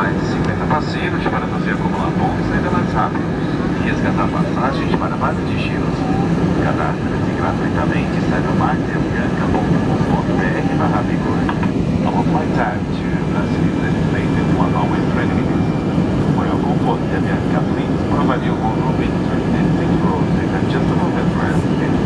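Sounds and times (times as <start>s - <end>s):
jet cabin engine roar: 0.0s - 22.0s
passengers murmuring: 0.0s - 22.0s.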